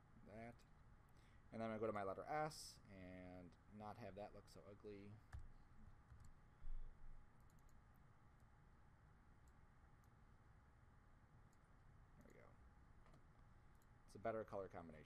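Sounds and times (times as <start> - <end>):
computer mouse clicks: 6.1 - 6.4, 7.4 - 7.8.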